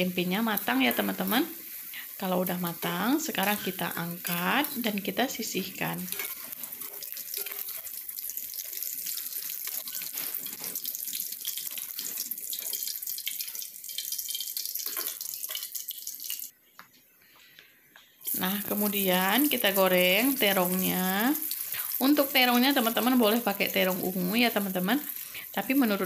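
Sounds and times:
oil sizzling in a wok: 0.0 - 16.5, 18.2 - 26.0.

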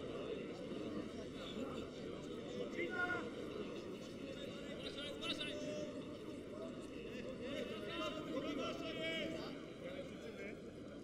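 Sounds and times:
stadium crowd noise: 0.0 - 11.0.

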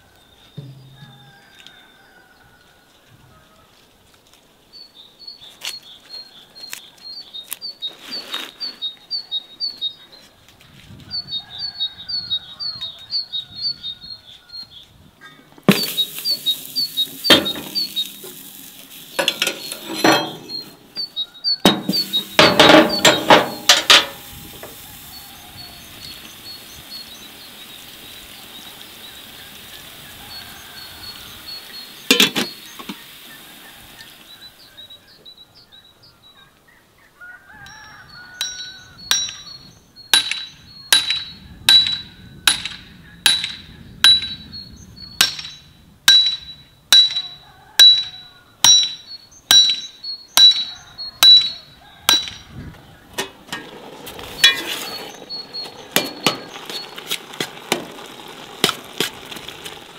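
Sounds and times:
hammer striking metal: 15.7 - 16.6, 17.2 - 18.0, 19.2 - 20.8, 21.6 - 24.2, 38.4 - 39.5, 40.2 - 44.4, 45.2 - 52.5
metal pot and lid clinking: 15.7 - 18.4, 19.2 - 20.8, 21.6 - 24.3, 32.1 - 32.9, 54.4 - 54.9
faint bird chirps: 43.8 - 52.1.

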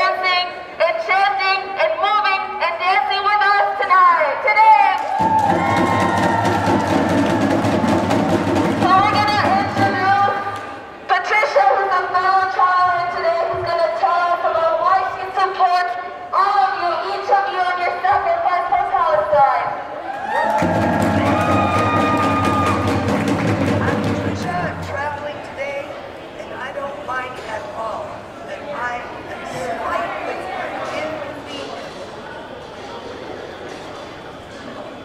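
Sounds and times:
crowd noise: 0.0 - 35.0
drums beating fast rhythm: 5.2 - 10.4, 20.4 - 25.2.

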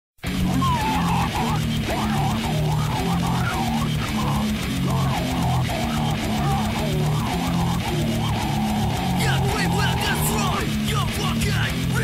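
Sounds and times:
distorted guitars chugging riff: 0.2 - 12.0
fast drums: 0.2 - 12.0
wavering higher guitar line: 0.2 - 12.0.

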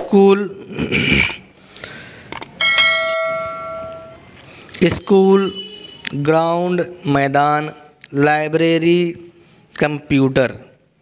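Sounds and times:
bell ding: 2.6 - 4.2.

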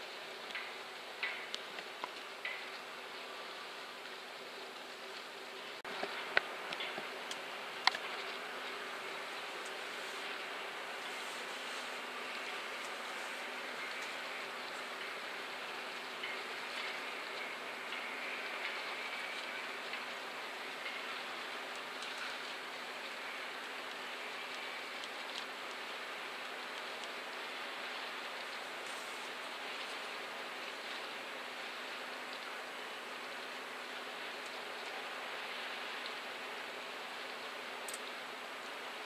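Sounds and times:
even hiss: 0.0 - 39.0
faint ticks: 0.5 - 2.9, 11.1 - 15.2, 15.9 - 31.2, 37.1 - 38.2.

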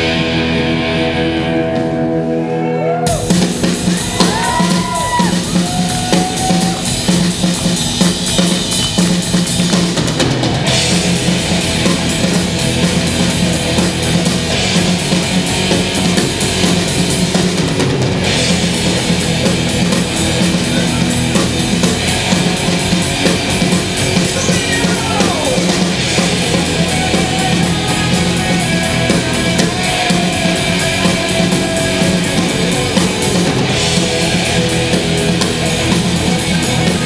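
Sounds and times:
live heavy metal band playing: 0.0 - 37.0.

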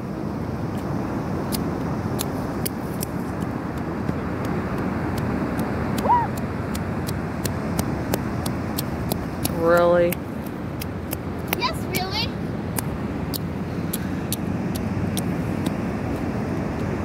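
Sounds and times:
ocean surf breaking: 0.0 - 17.0.

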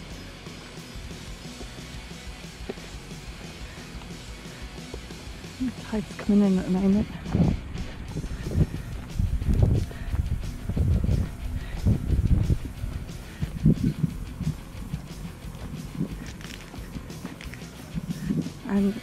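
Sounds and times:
wind buffeting microphone: 6.8 - 17.1.

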